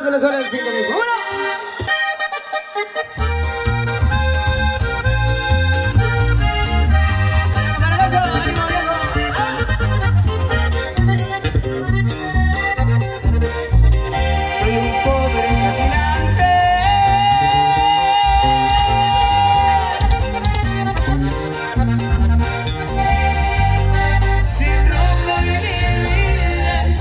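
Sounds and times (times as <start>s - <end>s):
accordion: 0.0s - 27.0s
electric bass: 3.2s - 27.0s.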